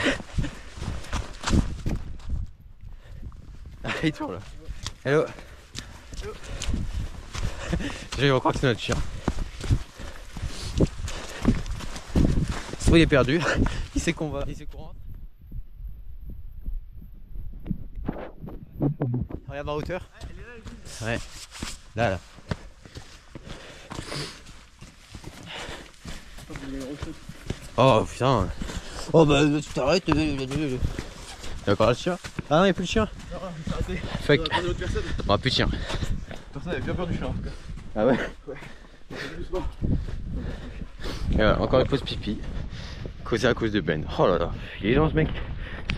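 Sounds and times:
footsteps on dirt and snow: 0.0 - 14.6, 18.0 - 43.3
low rumble on microphone: 14.9 - 19.9.

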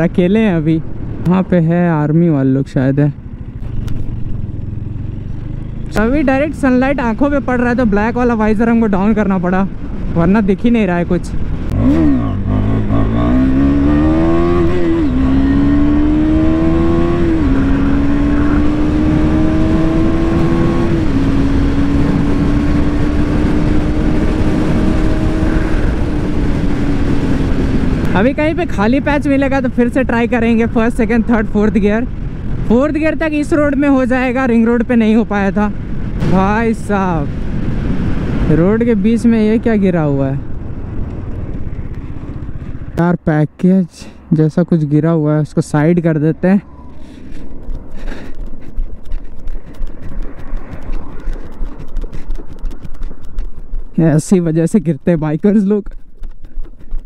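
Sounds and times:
motorcycle engine accelerating: 0.0 - 57.0
wind rushing over microphone: 3.7 - 43.4, 44.2 - 57.0.

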